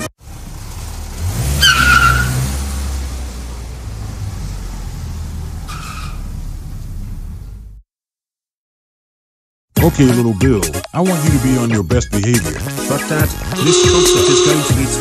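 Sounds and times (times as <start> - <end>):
car engine revving: 0.0 - 7.8, 13.6 - 14.8
tyre squeal: 1.6 - 2.4, 5.6 - 6.3.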